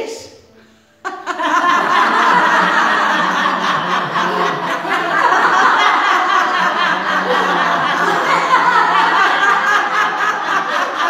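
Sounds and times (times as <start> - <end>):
group laughing loudly: 1.1 - 11.0.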